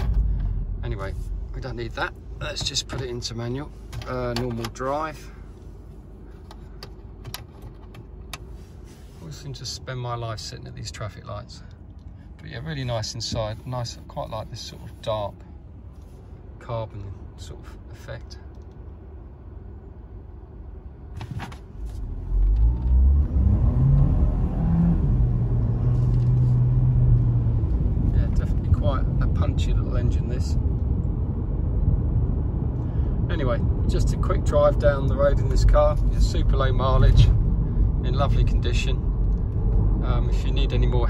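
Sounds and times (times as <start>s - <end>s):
car engine and tyres rumbling: 0.0s - 41.0s
car engine revving: 22.0s - 28.1s.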